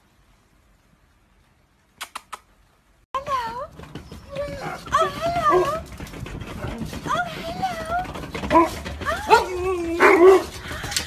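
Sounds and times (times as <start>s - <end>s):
huskies whining and calling: 3.3s - 11.0s.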